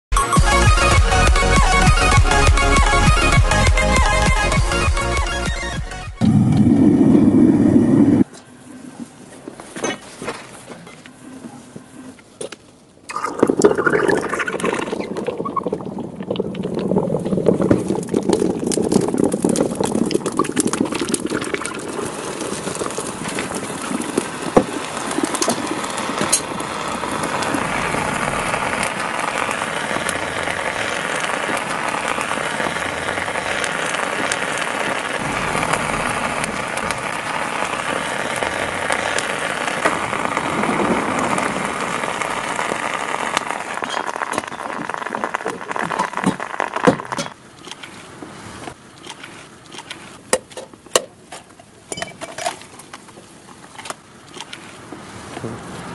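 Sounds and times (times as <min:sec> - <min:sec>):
molten lava crackling: 0:00.4 - 0:55.9
steady rushing noise: 0:01.3 - 0:08.3, 0:22.0 - 0:43.9.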